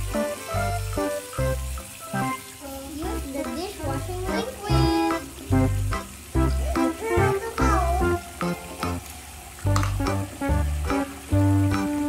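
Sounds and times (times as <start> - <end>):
faint steady hiss: 0.0 - 12.0
music with bouncing bass line: 0.0 - 12.0.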